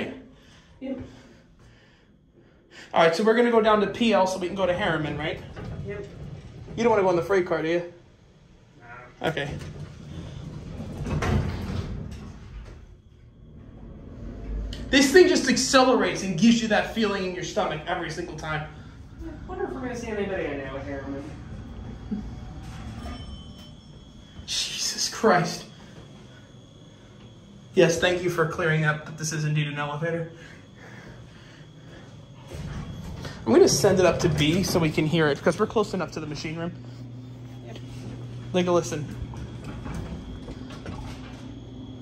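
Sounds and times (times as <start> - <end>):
elevator low rumble: 0.0 - 42.0
elevator doors sliding shut: 3.1 - 37.0, 37.8 - 42.0.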